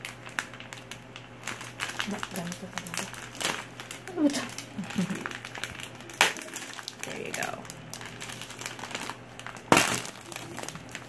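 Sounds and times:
plastic bag crinkling and rustling: 0.0 - 11.0.

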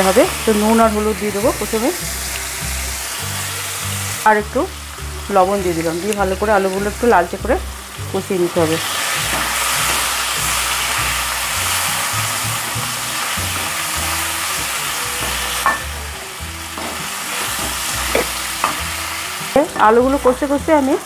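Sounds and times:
potato wedges sizzling in oil: 0.0 - 21.0.

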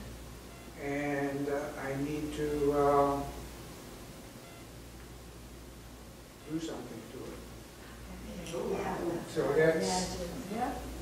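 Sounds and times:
low hum and faint hiss: 0.0 - 11.0.

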